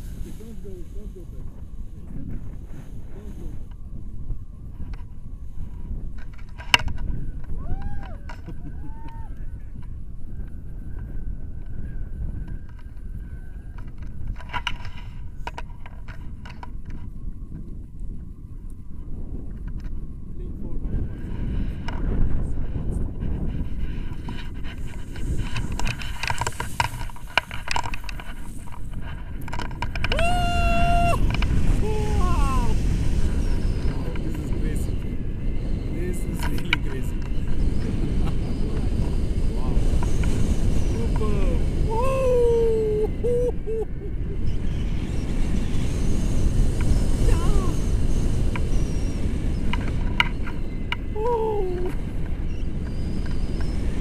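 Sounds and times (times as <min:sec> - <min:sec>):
wind buffeting microphone: 0:00.0 - 0:54.0
person calling out: 0:31.8 - 0:32.8, 0:41.9 - 0:43.6, 0:51.2 - 0:51.9.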